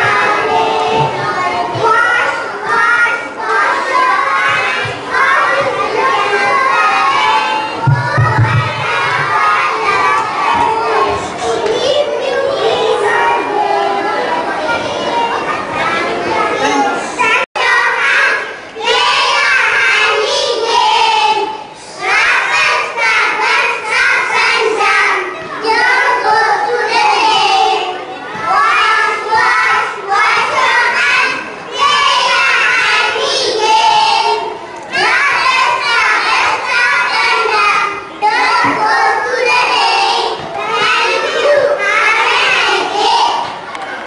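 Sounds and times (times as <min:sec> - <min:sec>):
children singing in unison: 0:00.0 - 0:44.0.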